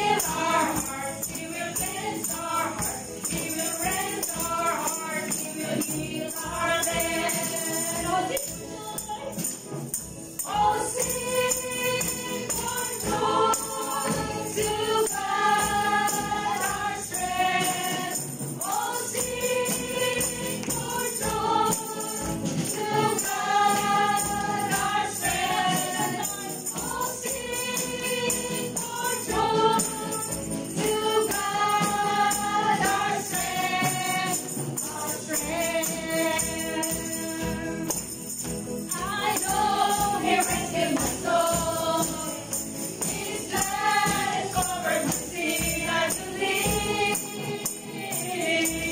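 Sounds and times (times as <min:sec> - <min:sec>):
musical accompaniment: 0:00.0 - 0:48.9
tambourine jingles: 0:00.0 - 0:48.9
women singing worship song: 0:00.0 - 0:48.9.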